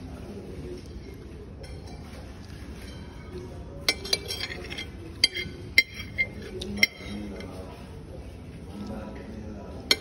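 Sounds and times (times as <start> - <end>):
metal spoon scraping ceramic plate: 3.9 - 7.5.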